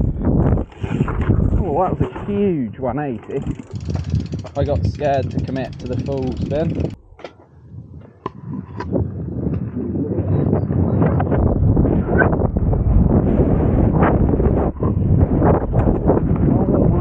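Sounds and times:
bike tyres on dirt: 0:00.0 - 0:08.1
wind on microphone: 0:00.0 - 0:17.0
bike knocks and rattles: 0:03.2 - 0:08.9, 0:14.8 - 0:16.6.

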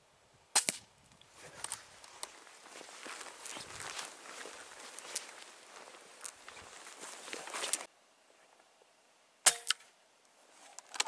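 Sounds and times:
rifle shot crack: 0:00.5 - 0:00.8, 0:09.4 - 0:09.8
footsteps swishing through grass: 0:01.3 - 0:07.9.

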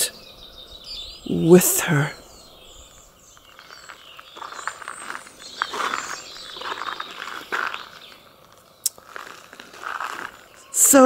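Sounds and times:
garden birds chirping: 0:00.0 - 0:11.0.

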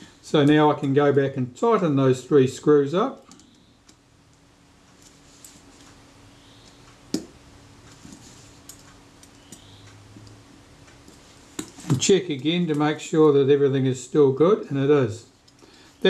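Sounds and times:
small metallic clicks: 0:03.2 - 0:07.0, 0:07.8 - 0:11.8.

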